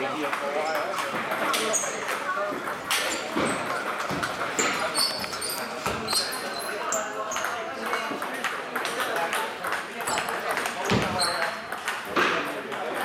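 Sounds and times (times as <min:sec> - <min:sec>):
people talking: 0:00.0 - 0:13.0
table tennis balls pinging: 0:00.3 - 0:13.0.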